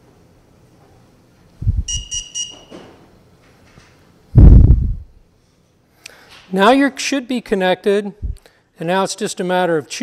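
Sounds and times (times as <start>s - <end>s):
high electronic beeps: 1.8s - 2.8s
loud low rumble: 4.4s - 5.2s.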